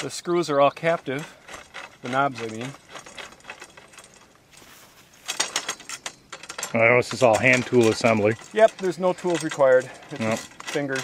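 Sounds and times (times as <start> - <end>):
clicks and rattles of hardware: 0.0 - 11.0.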